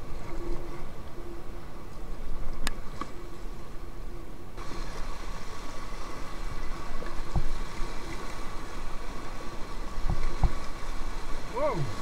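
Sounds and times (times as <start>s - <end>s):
white water rushing: 4.6s - 12.0s.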